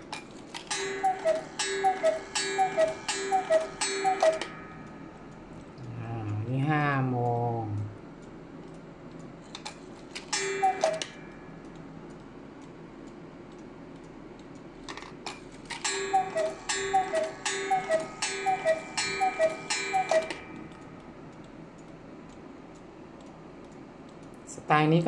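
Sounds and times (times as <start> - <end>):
clock clicking: 0.0 - 25.0
cuckoo clock call: 0.6 - 5.4, 10.3 - 11.7, 15.7 - 21.0
clock bell ringing: 0.7 - 5.3, 10.3 - 11.6, 15.8 - 21.0.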